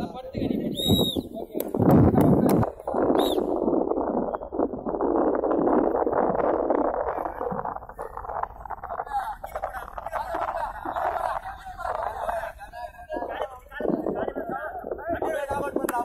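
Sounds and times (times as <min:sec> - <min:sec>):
rough steady background noise: 0:00.0 - 0:16.0.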